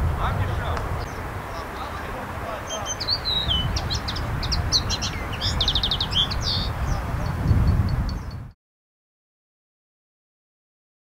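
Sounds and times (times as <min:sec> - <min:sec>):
songbird singing: 0:00.0 - 0:08.6.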